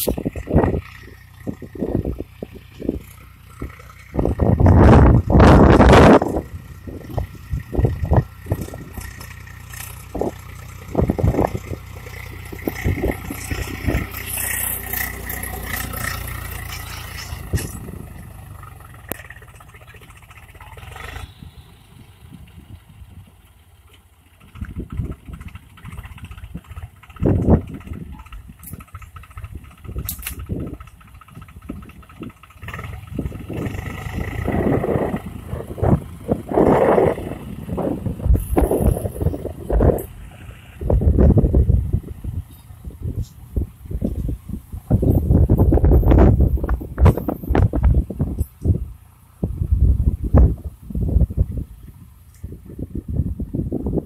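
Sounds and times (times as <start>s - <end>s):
wind buffeting microphone: 0.0s - 19.2s, 20.1s - 23.4s, 24.4s - 54.0s
tractor diesel engine running: 0.0s - 54.0s.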